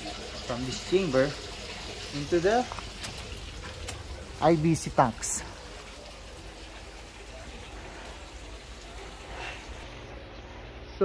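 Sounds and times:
water rushing and splashing: 0.0 - 10.1
low hum: 2.7 - 11.0.

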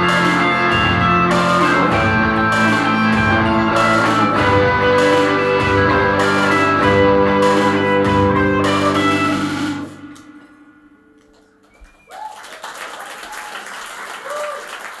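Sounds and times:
live band final chord: 0.0 - 11.7
audience applause: 11.2 - 15.0
audience shouts: 12.1 - 15.0.

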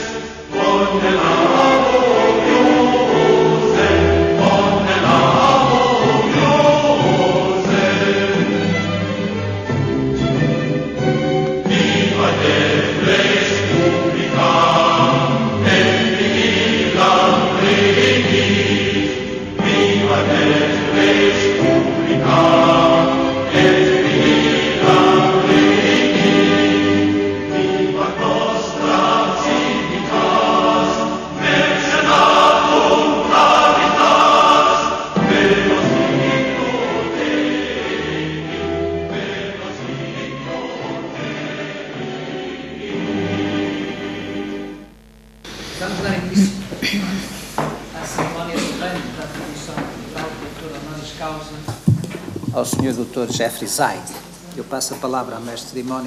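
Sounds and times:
choir singing: 0.0 - 46.6.

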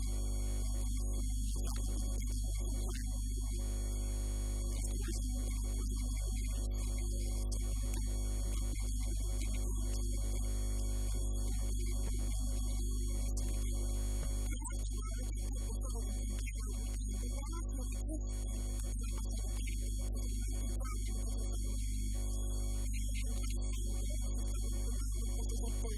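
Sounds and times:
electrical mains hum: 0.0 - 19.4.

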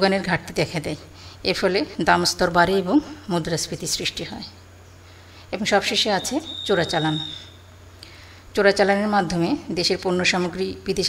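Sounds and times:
woman lecturing: 0.0 - 4.6, 5.5 - 7.5, 8.6 - 11.0
high thin electronic beep tone: 6.2 - 7.7.

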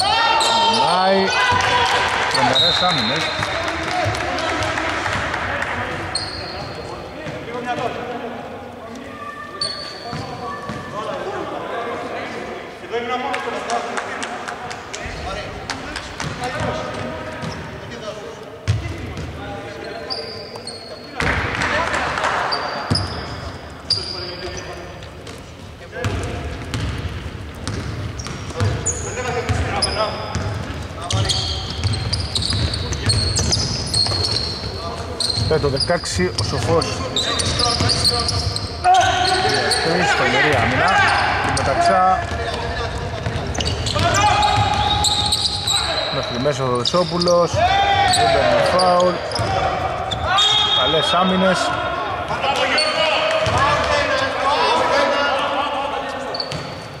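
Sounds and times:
sneakers squeaking: 0.0 - 4.4, 5.1 - 8.1, 8.9 - 11.5, 15.0 - 57.0
players' voices: 0.0 - 57.0.

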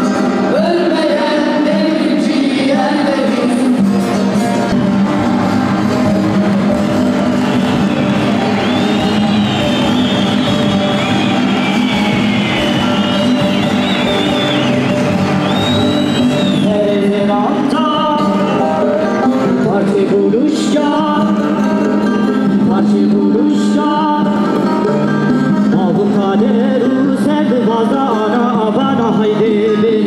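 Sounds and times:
voices singing along: 0.0 - 21.7
live folk band playing: 0.0 - 30.0.

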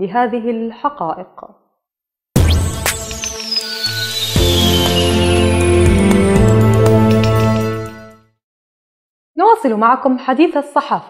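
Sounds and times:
synthesized news theme music: 2.4 - 8.3.

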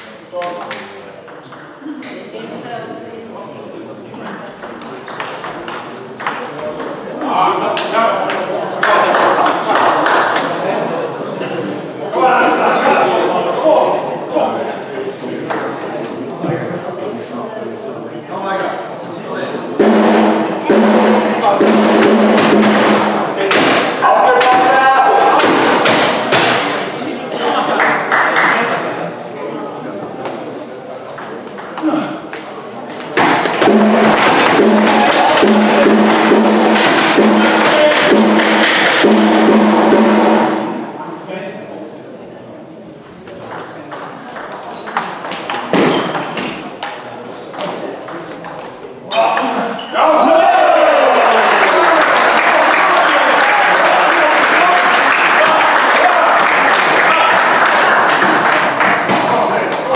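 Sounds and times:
table tennis ball bouncing: 0.4 - 1.8, 4.1 - 7.9, 31.1 - 39.3, 43.4 - 48.7
spectators applauding and cheering: 50.2 - 59.5.

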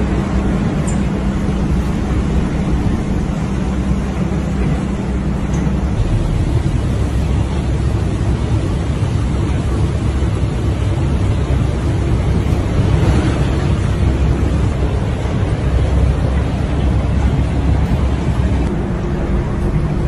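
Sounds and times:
running floodwater: 0.0 - 20.0
torrential rain: 0.0 - 20.0
wind buffeting microphone: 0.0 - 20.0.

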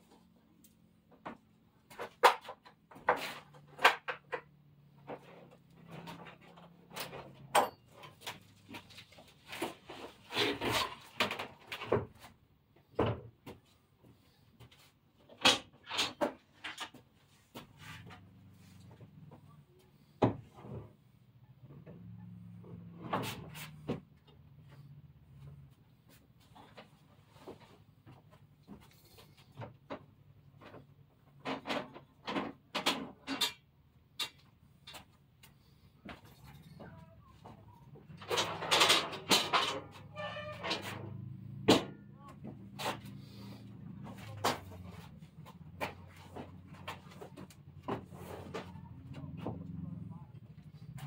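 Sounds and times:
faint knocks and rustles: 0.0 - 51.0.

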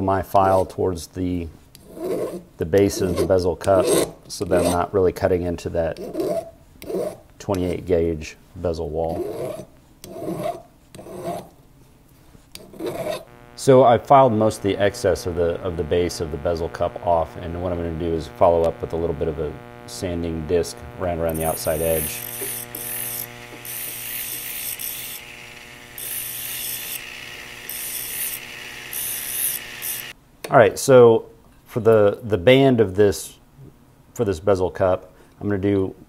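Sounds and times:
metal file rasping on silver: 1.8 - 4.9, 6.0 - 7.8, 9.1 - 11.6, 12.6 - 13.4, 21.3 - 30.1
sanding disc scratching metal: 1.8 - 4.9, 9.1 - 11.5, 12.6 - 30.2
rotary tool motor whine: 12.6 - 30.2.

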